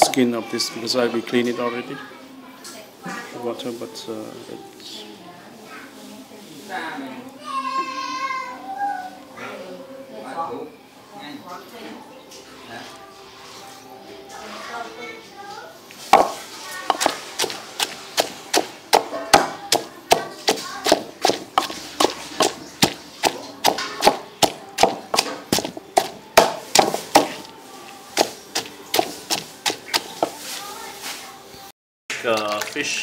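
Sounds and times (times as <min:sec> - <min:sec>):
water splashing in basin: 0:16.1 - 0:27.5
pestle pounding paste in mortar: 0:16.1 - 0:30.6.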